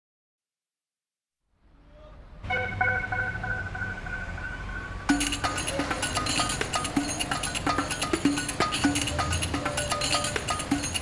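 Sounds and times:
sustained music notes: 0:02.4 - 0:11.0
percussive beat: 0:05.1 - 0:11.0.

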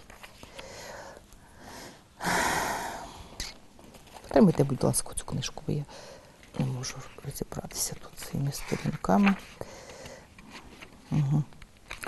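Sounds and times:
loud breath: 0:00.5 - 0:03.2.

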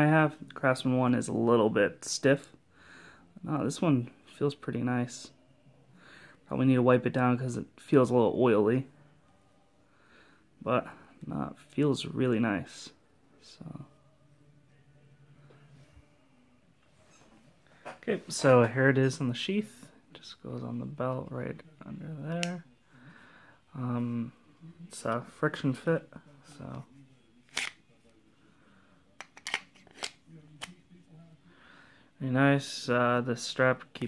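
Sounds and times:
multi-tool clicks and scrapes: 0:29.2 - 0:30.2.

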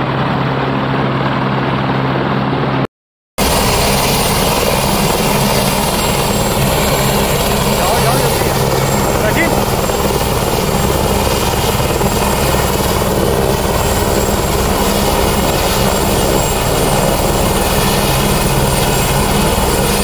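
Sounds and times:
helicopter rotor and turbine noise: 0:00.0 - 0:20.0.

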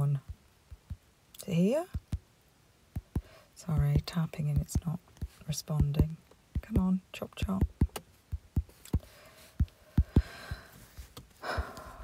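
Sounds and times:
fingertip taps on touchscreen: 0:01.9 - 0:02.2, 0:02.9 - 0:11.8
breathy exhale: 0:09.0 - 0:12.0.

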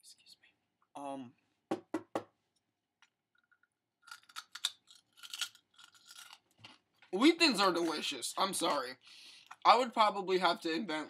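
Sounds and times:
person chewing crackers: 0:04.0 - 0:07.1.

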